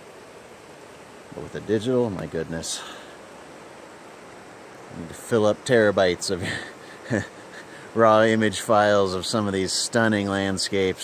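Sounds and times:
river rushing: 0:00.0 - 0:11.0.

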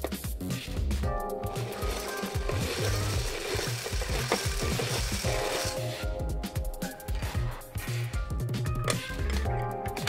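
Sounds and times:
background music: 0:00.0 - 0:10.0
toy motor whirring: 0:01.4 - 0:06.2.

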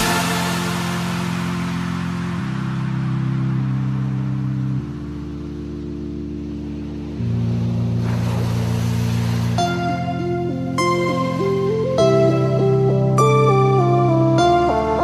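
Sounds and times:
synth pad chords: 0:00.0 - 0:15.0.

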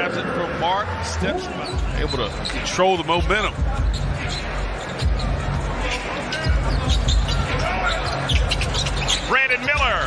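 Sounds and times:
crowd noise: 0:00.0 - 0:10.0
arena music with thumping bass: 0:06.5 - 0:10.0.

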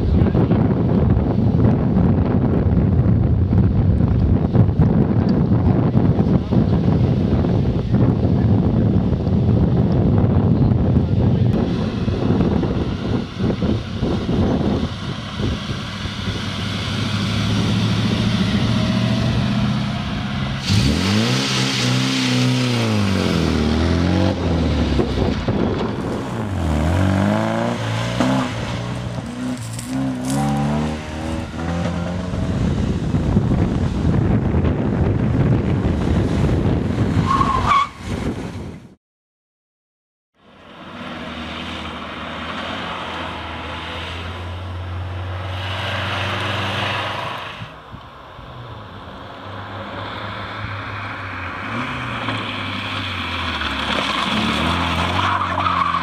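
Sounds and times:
wind noise: 0:00.0 - 0:39.0
car engine revving: 0:11.5 - 0:36.2.

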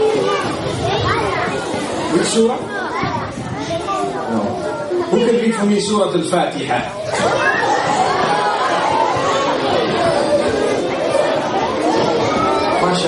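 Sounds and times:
children talking over one another: 0:00.0 - 0:13.0.

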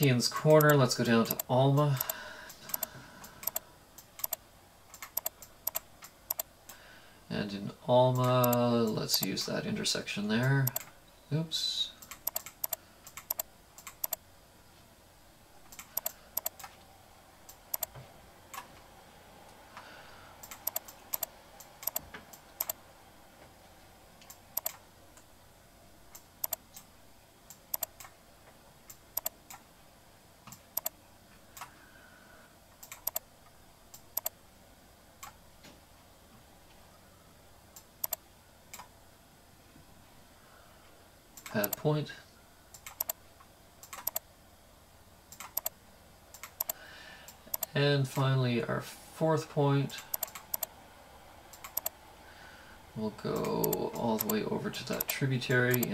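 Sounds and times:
faint room hiss: 0:00.0 - 0:55.9
computer mouse and keyboard clicks: 0:00.5 - 0:06.5, 0:08.1 - 0:09.4, 0:10.6 - 0:10.9, 0:12.0 - 0:14.2, 0:15.7 - 0:16.8, 0:17.5 - 0:18.7, 0:20.4 - 0:22.8, 0:24.2 - 0:24.8, 0:26.1 - 0:26.9, 0:27.5 - 0:28.2, 0:28.9 - 0:29.6, 0:30.4 - 0:31.0, 0:32.8 - 0:33.2, 0:37.8 - 0:38.9, 0:41.4 - 0:41.8, 0:42.7 - 0:43.2, 0:43.8 - 0:44.2, 0:45.3 - 0:46.8, 0:47.5 - 0:47.8, 0:50.0 - 0:50.7, 0:51.5 - 0:52.0, 0:53.4 - 0:55.9.

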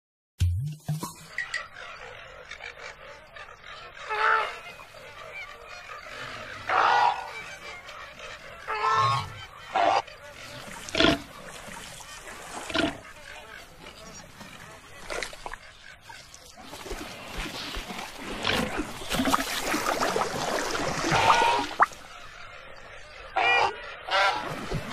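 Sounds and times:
flamingo honking: 0:20.6 - 0:22.2.

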